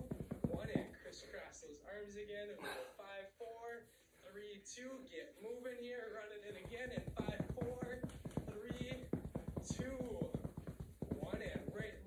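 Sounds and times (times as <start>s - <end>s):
sneakers tapping on floor: 0.0s - 1.1s, 6.5s - 12.0s.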